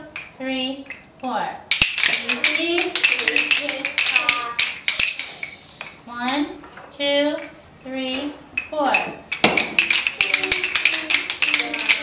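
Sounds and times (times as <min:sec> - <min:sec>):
wooden rhythm sticks clicking: 0:01.7 - 0:06.4, 0:08.6 - 0:12.0
children chanting: 0:09.8 - 0:12.0.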